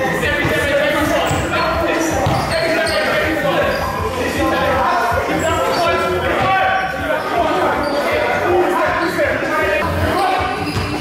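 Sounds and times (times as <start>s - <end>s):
players' voices echoing: 0.0s - 11.0s
sneakers squeaking: 0.0s - 11.0s
basketball bouncing on floor: 2.2s - 2.5s.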